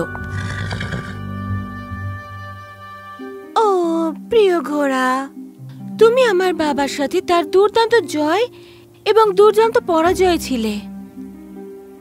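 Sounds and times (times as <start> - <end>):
horse neighing: 0.0 - 1.5
background music: 0.0 - 12.0.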